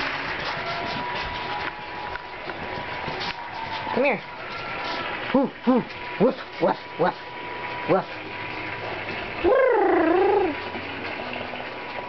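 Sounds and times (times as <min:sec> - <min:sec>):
puppy howling woo: 0:09.4 - 0:10.6.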